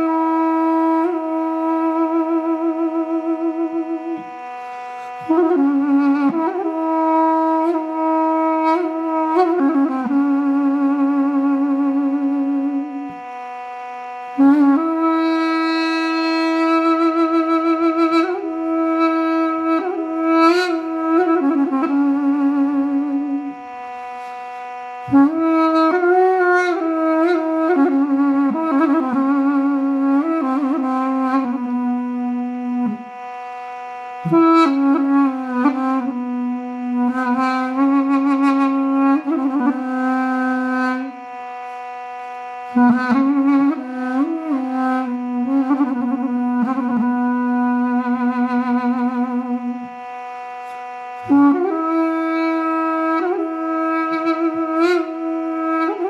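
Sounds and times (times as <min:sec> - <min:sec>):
duduk long note: 0:00.0 - 0:56.0
quiet steady drone: 0:00.0 - 0:56.0.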